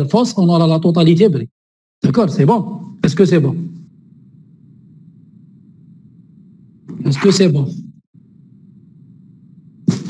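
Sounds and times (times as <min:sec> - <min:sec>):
low background hum: 0:02.0 - 0:10.0.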